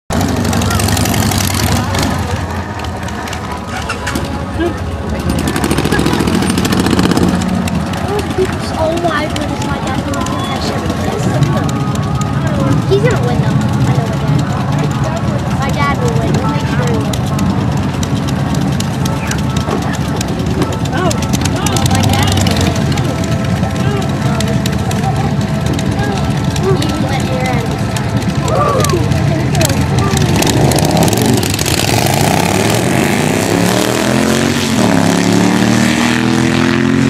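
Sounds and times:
people talking: 0.1 - 36.4
motorcycle engines running loud: 0.1 - 37.0.

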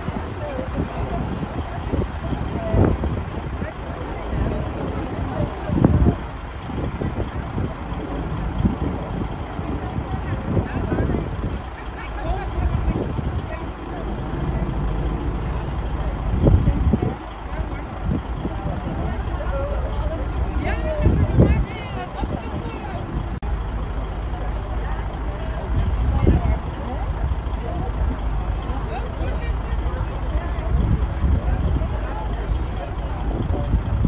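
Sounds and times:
chatter of people: 0.0 - 34.0
steady low rumble: 0.0 - 34.0.

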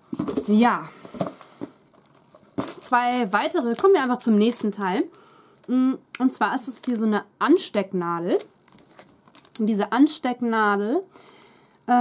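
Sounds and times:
woman speaking: 0.4 - 1.0, 2.8 - 5.1, 5.7 - 8.5, 9.6 - 11.1.

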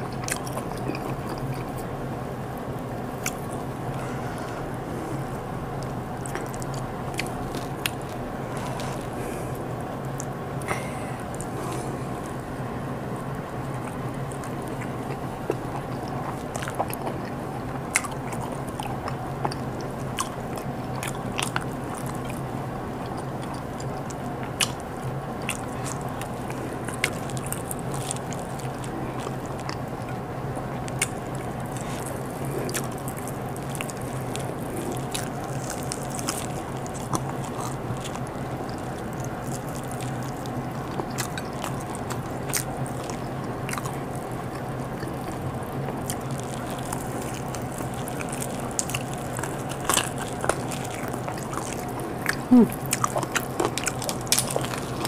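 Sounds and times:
chewing with wet mouth sounds: 0.0 - 55.0
steady low hum: 0.0 - 55.0.

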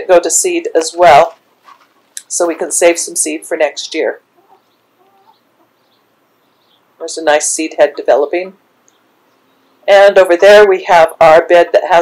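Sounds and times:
hens clucking: 1.2 - 3.1, 4.2 - 6.8.

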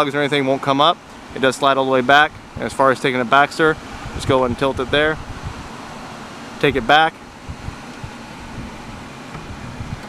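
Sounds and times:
car blower fan rushing: 0.0 - 10.0.

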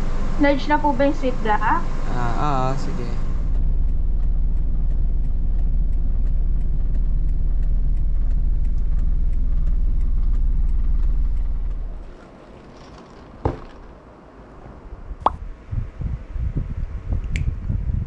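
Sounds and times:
car cabin low rumble: 0.0 - 13.0.

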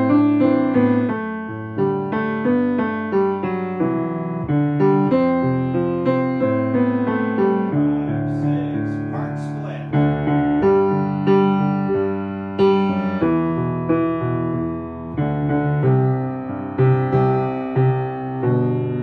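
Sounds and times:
piano notes and chords: 0.0 - 19.0.

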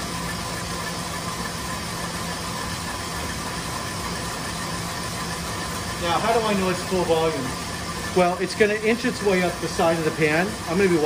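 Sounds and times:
stand mixer whipping: 0.0 - 11.0.

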